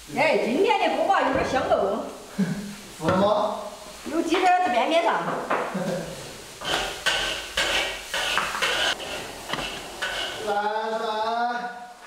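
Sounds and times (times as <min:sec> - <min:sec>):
metal spatula scraping wok: 0:06.6 - 0:10.6.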